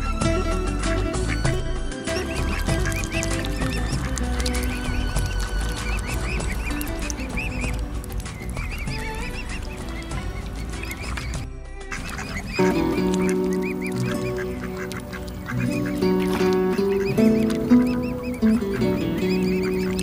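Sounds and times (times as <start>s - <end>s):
background music: 0.0s - 20.0s
cygnets peeping: 0.9s - 20.0s.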